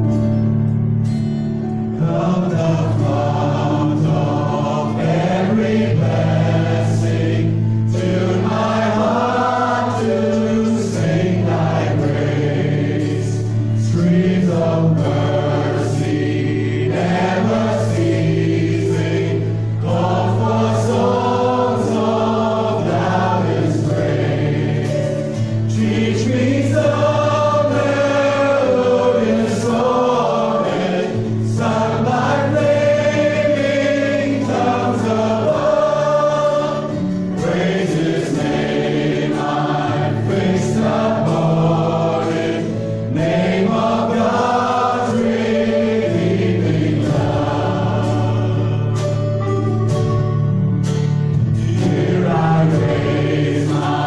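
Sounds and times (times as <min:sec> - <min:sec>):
acoustic guitar: 0:00.0 - 0:54.0
voices singing: 0:02.0 - 0:49.9, 0:51.4 - 0:54.0.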